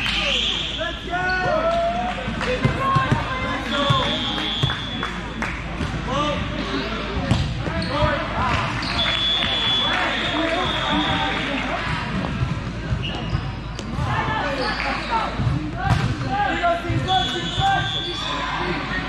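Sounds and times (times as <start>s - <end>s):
many overlapping voices: 0.0s - 19.0s.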